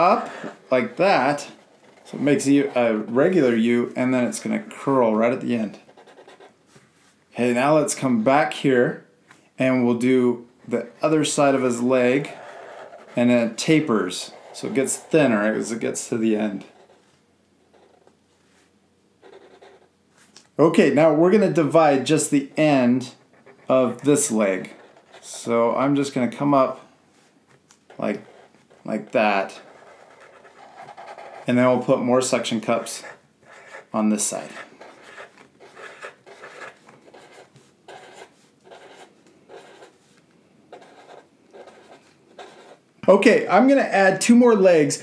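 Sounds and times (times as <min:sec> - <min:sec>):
marker scratching on paper: 0:00.0 - 0:03.4, 0:05.8 - 0:06.6, 0:12.2 - 0:15.2, 0:16.6 - 0:18.2, 0:19.2 - 0:19.9, 0:23.1 - 0:25.4, 0:27.9 - 0:31.5, 0:32.8 - 0:42.8.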